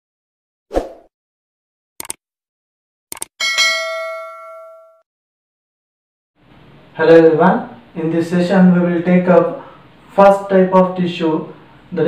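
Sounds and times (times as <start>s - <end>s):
notification bell ding: 3.4s - 5.0s.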